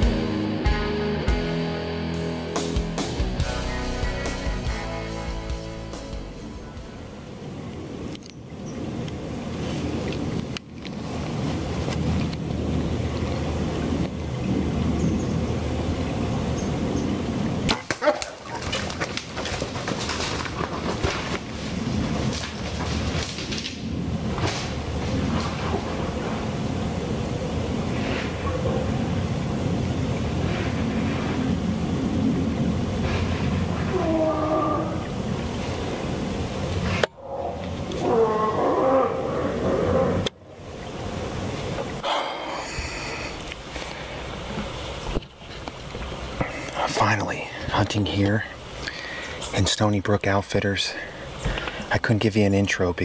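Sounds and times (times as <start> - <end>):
steady background hiss: 0.0 - 53.0
bear moaning: 33.6 - 35.2, 37.2 - 40.4.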